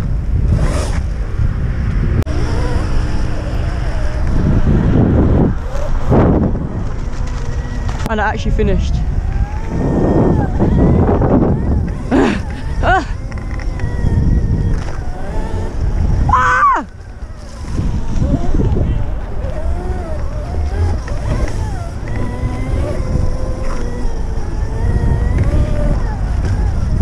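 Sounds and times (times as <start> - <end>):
electric motor whine: 0.0 - 27.0
wind rumble on microphone: 0.0 - 27.0.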